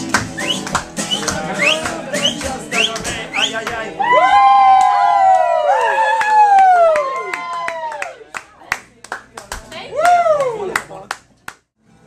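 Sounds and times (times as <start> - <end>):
sharp handclaps: 0.0 - 3.8, 4.8 - 11.7.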